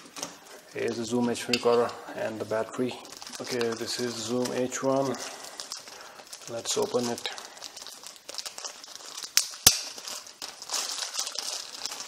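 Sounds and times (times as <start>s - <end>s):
plastic bag crinkling: 0.0s - 12.0s
sharp snaps: 9.3s - 10.0s.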